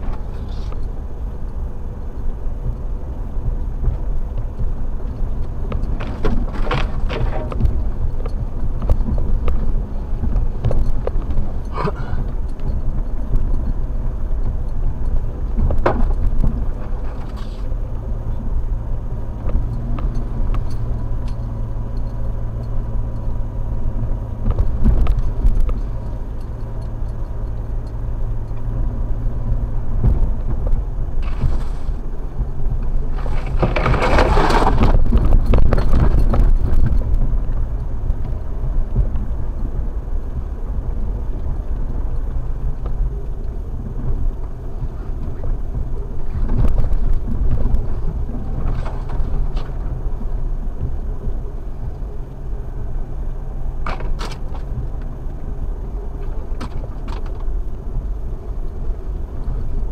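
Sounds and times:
car engine running steadily: 0:00.0 - 0:59.9
branches scraping over windshield: 0:16.8 - 0:17.7, 0:31.2 - 0:32.0, 0:33.0 - 0:35.2.

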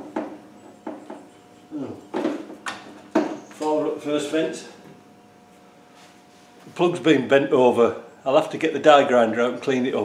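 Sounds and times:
man talking: 0:06.7 - 0:10.0.

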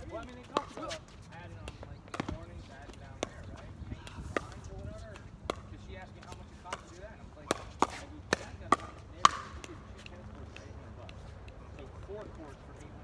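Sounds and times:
paddles hitting plastic ball: 0:01.6 - 0:09.8.

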